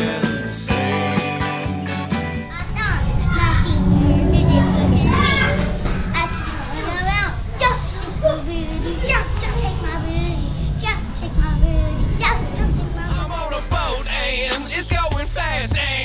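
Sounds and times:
background guitar music: 0.0 - 2.6, 3.7 - 6.0
low background rumble: 2.7 - 14.0.

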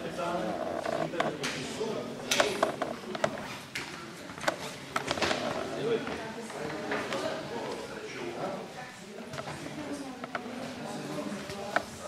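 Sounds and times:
murmuring voices in a hall: 0.0 - 12.0.

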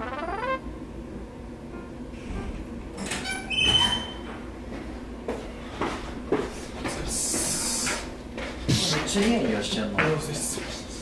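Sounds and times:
door hinge squeaking: 3.0 - 4.3.

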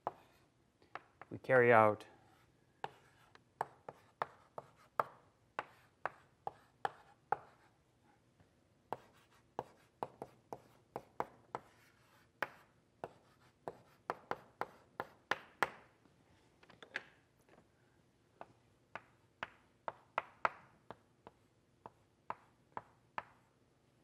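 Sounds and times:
chalk tapping and scratching: 0.0 - 1.3, 2.2 - 7.7, 8.9 - 15.8.

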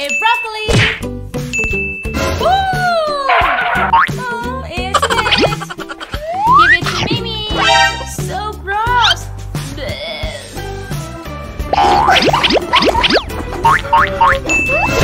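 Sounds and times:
upbeat background music: 0.0 - 15.0
short dings: 1.5 - 2.2
sliding boing-like tones: 11.7 - 15.0.

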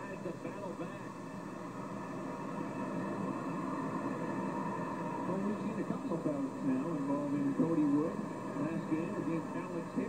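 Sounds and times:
arena crowd noise on television: 0.0 - 10.0.

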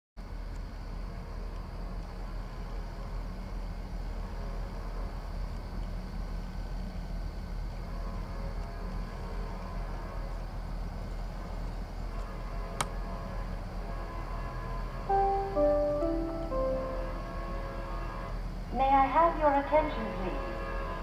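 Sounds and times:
faint hum: 0.2 - 20.3
diesel locomotive rumble: 0.2 - 21.0.

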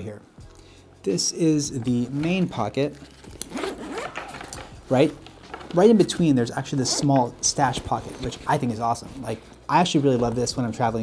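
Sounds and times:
zipper being pulled open: 2.0 - 5.8.

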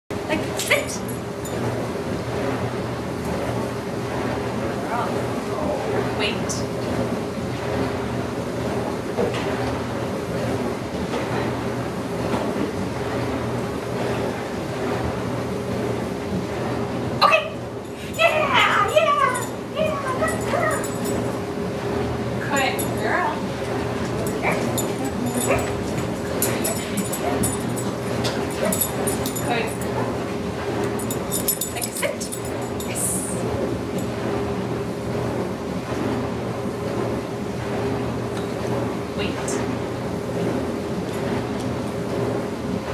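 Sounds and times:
electric fan humming: 0.1 - 42.9.

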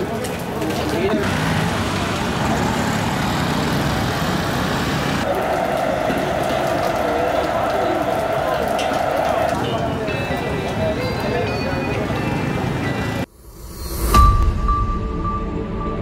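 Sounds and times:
crowd chatter: 0.0 - 13.3
traffic: 0.0 - 14.2
steady tone: 13.3 - 16.0.

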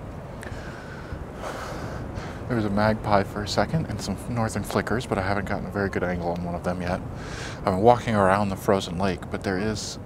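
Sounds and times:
man breathing in: 0.4 - 2.5, 7.2 - 7.6.

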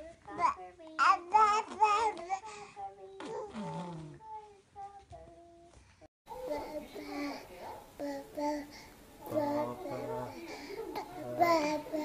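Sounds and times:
baby babbling: 6.3 - 12.0.

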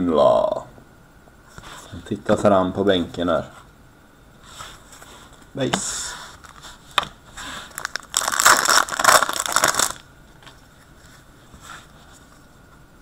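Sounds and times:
foil wrapper crinkling and tearing: 7.6 - 10.1.

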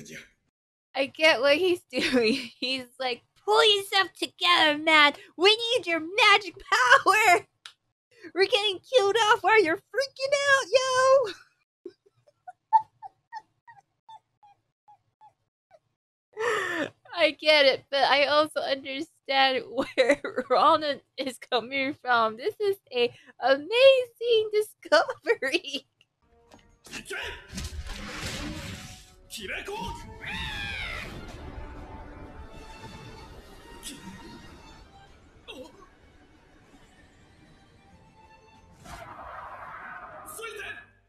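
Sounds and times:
woman giggling: 12.4 - 13.8.

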